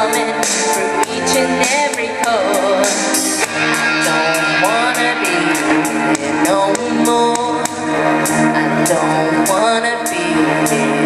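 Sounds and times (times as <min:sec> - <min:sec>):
pop backing track with drum beat: 0:00.0 - 0:11.0
woman singing into a microphone: 0:00.0 - 0:11.0.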